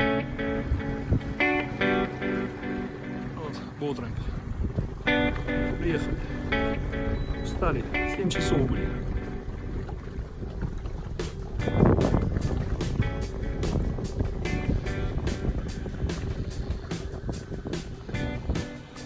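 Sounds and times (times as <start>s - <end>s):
boat rumble: 0.0s - 19.0s
background music with steady beat: 11.2s - 19.0s.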